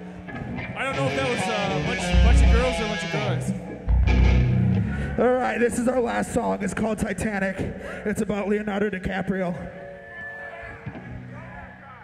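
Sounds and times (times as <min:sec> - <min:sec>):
faint crowd voices: 0:00.0 - 0:06.8
amplifier hum and held tones: 0:02.0 - 0:05.2.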